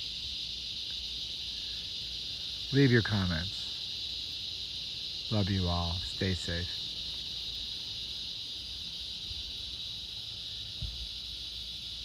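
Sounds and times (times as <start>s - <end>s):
cicadas chorus: 0.0s - 12.0s.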